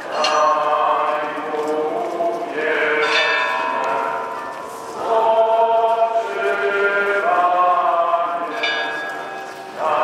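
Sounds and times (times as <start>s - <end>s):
choir singing a slow hymn: 0.0s - 10.0s.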